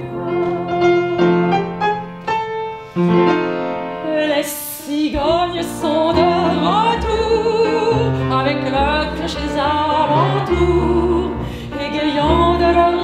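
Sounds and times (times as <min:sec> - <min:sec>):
double bass: 0:00.0 - 0:02.3, 0:05.1 - 0:13.0
piano: 0:00.0 - 0:13.0
woman singing with vibrato: 0:04.0 - 0:13.0.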